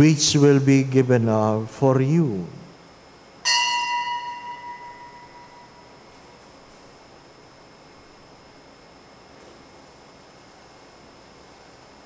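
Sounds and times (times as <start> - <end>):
altar bell ringing: 3.4 - 6.0.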